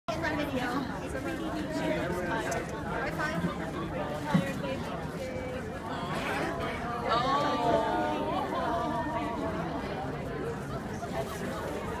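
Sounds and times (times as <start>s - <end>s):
chatter of people talking: 0.1s - 12.0s.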